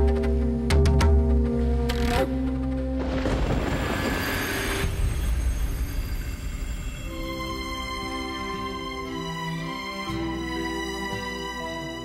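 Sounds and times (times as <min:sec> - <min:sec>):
whoosh with high ringing tone: 0:03.7 - 0:07.7.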